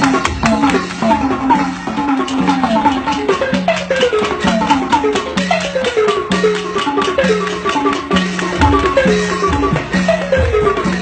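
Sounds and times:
tuned drum and gong ensemble: 0.0s - 11.0s.

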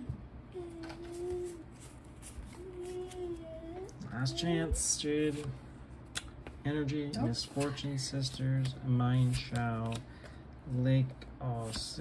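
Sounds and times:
trading cards clicking: 8.6s - 10.4s.

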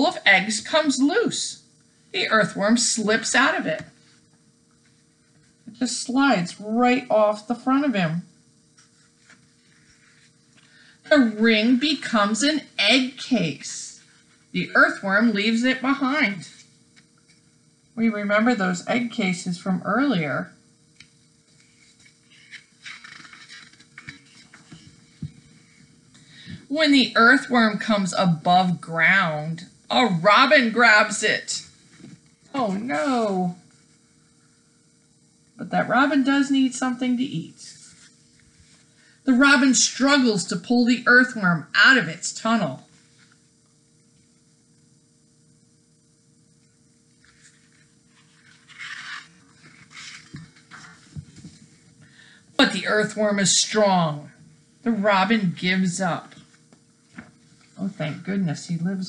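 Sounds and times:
faint steady hum: 0.0s - 59.0s
paper pages rustling and turning: 8.8s - 10.8s, 21.0s - 25.9s, 47.2s - 51.8s, 56.5s - 57.8s.

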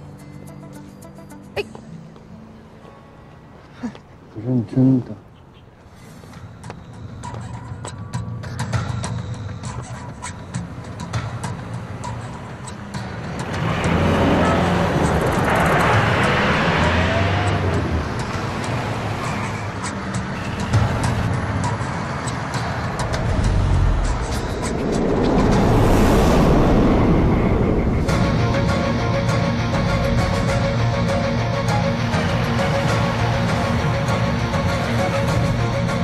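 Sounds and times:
road traffic rushing: 2.5s - 36.0s
music with ticking beat: 6.3s - 13.7s
truck approaching: 10.4s - 36.0s.

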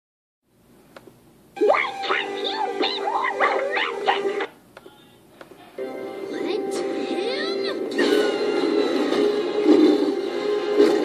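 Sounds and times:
cartoon music through laptop speakers: 1.6s - 4.5s, 5.8s - 11.0s
high swooping voice: 1.6s - 4.5s.

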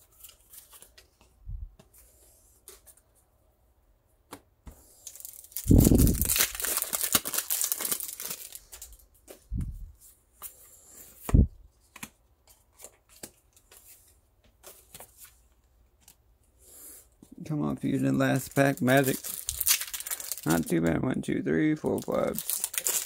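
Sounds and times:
foil wrapper tearing: 5.0s - 9.0s, 18.3s - 20.7s, 21.9s - 23.0s.

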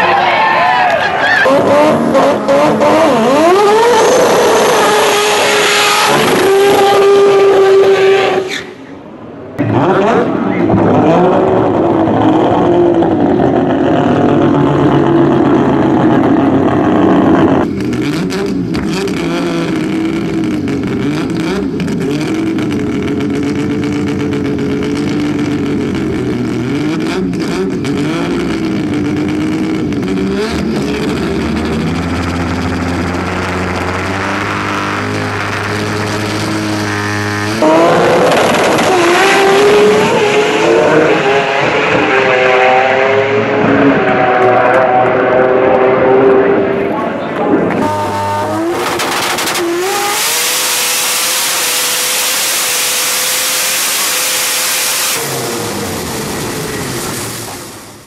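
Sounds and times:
rotary engine revving: 1.4s - 8.5s, 9.6s - 58.0s.

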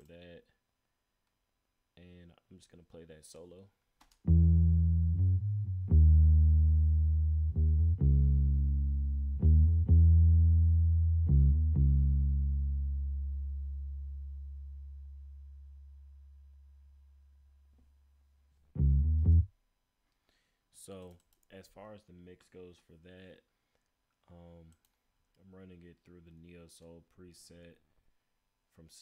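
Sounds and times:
electric bass plucked notes: 4.2s - 16.9s, 18.7s - 19.5s.

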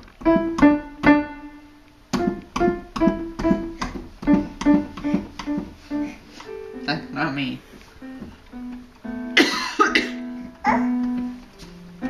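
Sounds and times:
electronic keyboard notes: 0.0s - 12.0s
woman coughing: 9.4s - 10.2s.

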